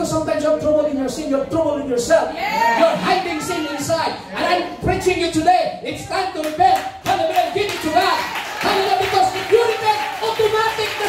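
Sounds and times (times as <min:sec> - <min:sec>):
rhythmic hand clapping: 0:06.3 - 0:11.0.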